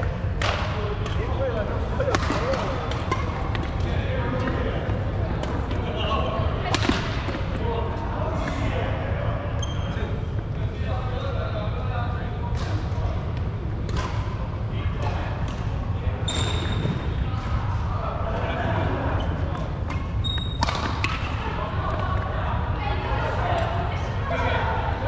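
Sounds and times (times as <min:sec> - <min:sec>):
players' voices: 0:00.0 - 0:25.0
rackets hitting shuttlecocks: 0:06.7 - 0:07.4.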